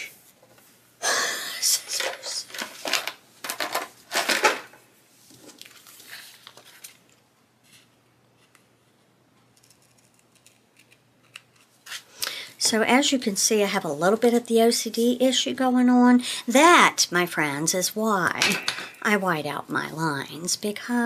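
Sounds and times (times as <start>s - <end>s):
paper handling: 5.3s - 7.9s.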